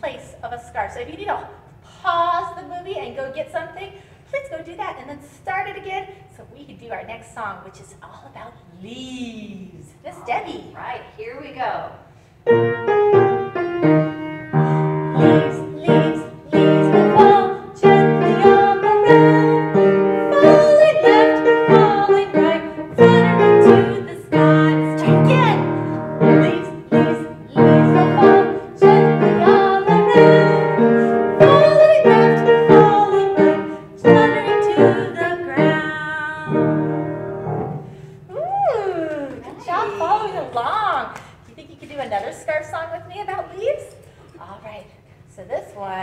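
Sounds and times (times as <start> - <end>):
piano song accompaniment: 12.5 - 38.0.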